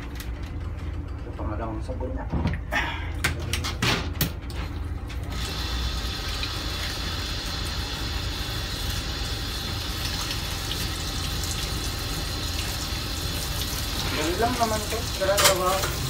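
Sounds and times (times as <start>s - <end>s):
shower sprayer hissing: 5.3s - 16.0s.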